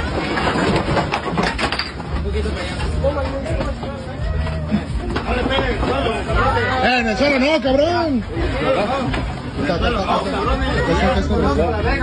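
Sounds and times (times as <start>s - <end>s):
voices talking and shouting: 1.9s - 12.0s.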